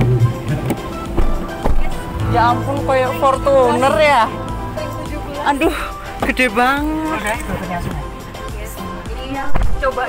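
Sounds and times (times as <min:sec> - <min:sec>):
car door unlatching clicks: 0:00.0 - 0:02.2
background music: 0:00.0 - 0:10.0.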